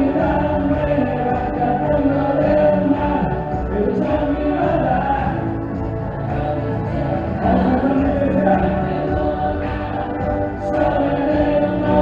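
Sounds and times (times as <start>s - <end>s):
acoustic guitar: 0.0s - 12.0s
electric guitar: 0.0s - 12.0s
voices singing together: 0.0s - 12.0s.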